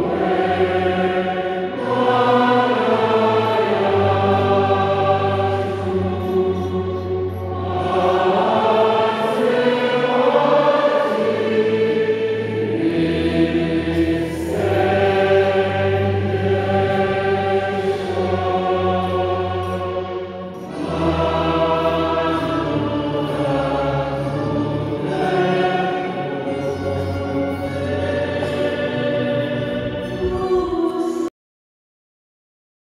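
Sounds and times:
choir singing: 0.0 - 31.3.

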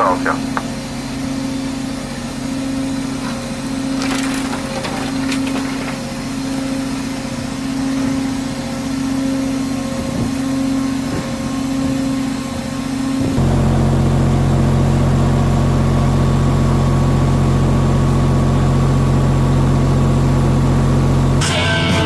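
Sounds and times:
ship engine humming: 0.0 - 16.4
clicking and clatter: 4.0 - 6.1.

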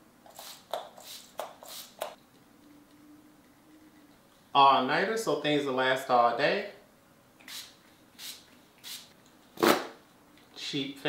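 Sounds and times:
spray bottle hissing spritzes: 0.3 - 2.2, 7.4 - 9.1.

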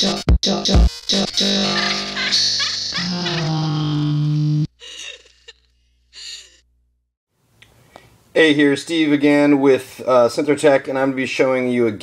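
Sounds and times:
faint room hiss: 7.4 - 12.0.

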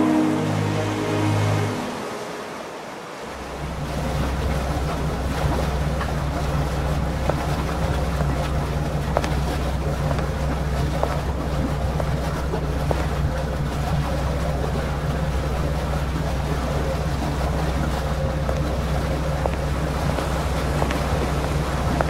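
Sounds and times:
ship machinery rumble and hum: 0.0 - 22.0.

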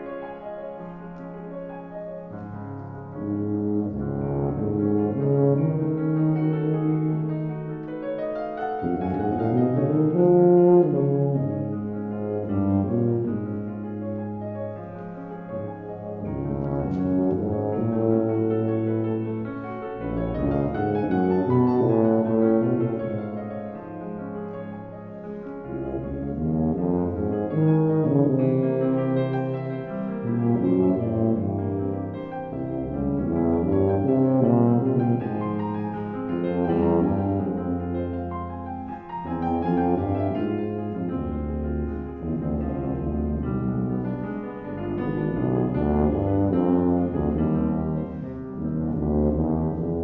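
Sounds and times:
piano accompaniment: 0.0 - 50.0
tuba playing: 2.1 - 50.0.

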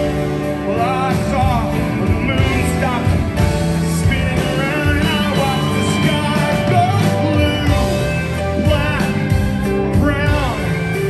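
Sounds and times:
lead vocal singing: 0.0 - 11.0
live rock band: 0.0 - 11.0.

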